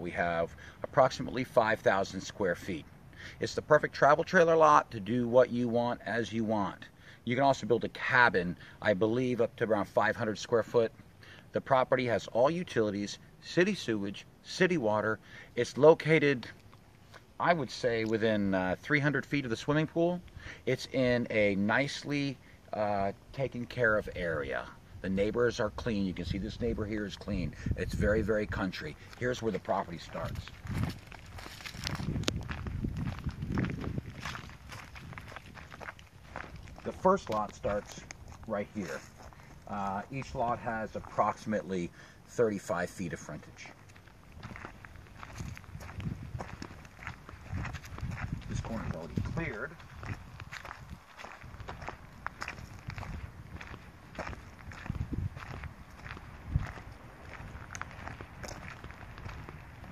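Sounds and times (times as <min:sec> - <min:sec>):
footsteps crunching dry leaves: 0:28.8 - 0:41.5, 0:43.6 - 0:59.9.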